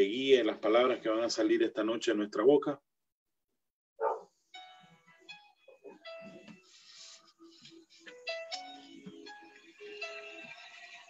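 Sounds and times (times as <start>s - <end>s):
dog bark: 4.0s - 4.4s
faint music with held notes: 4.3s - 11.0s.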